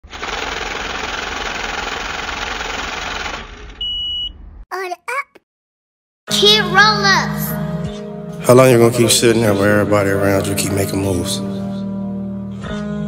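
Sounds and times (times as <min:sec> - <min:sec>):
short high beep: 0:03.8 - 0:04.4.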